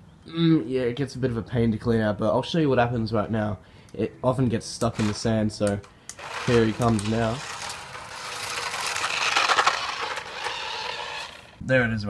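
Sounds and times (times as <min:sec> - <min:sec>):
toy car motor whirring: 0:04.9 - 0:05.4, 0:06.1 - 0:11.6.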